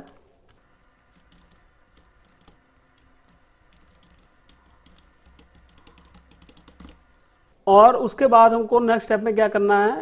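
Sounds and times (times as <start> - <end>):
computer keyboard typing: 0.0 - 7.3.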